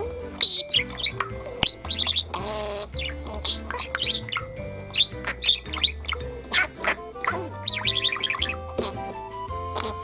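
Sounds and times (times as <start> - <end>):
background music with held notes: 0.0 - 10.0
budgerigar chattering and chirping: 0.0 - 10.0.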